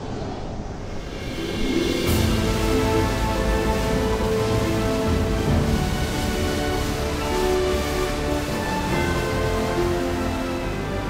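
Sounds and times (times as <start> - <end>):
waterfall roar: 0.9 - 11.0
sustained music tones: 1.0 - 11.0.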